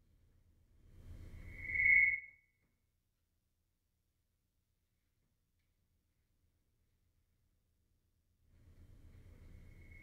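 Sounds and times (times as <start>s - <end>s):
faint low rumble: 0.0s - 1.7s, 5.3s - 10.0s
high whistling tone: 1.4s - 2.6s, 9.7s - 10.0s.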